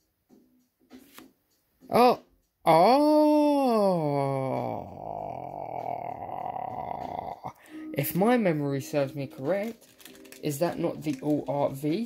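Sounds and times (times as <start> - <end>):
man exclaiming ohhh: 1.9 - 7.6.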